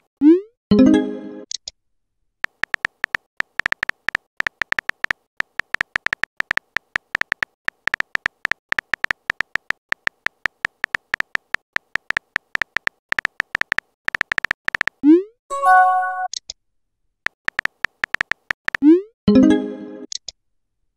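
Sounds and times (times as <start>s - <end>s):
phone keyboard typing clicks: 2.4s - 15.0s, 17.4s - 18.8s
message chime: 15.5s - 16.3s.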